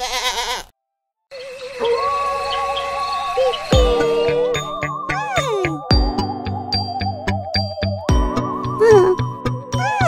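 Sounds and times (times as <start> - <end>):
wavering electronic tone: 1.3 - 5.1
cartoon background music: 1.3 - 10.0.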